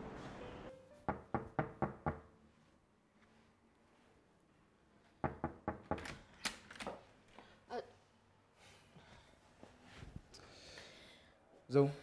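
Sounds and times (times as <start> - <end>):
knocks on wooden door: 1.1 - 2.2, 5.2 - 6.0.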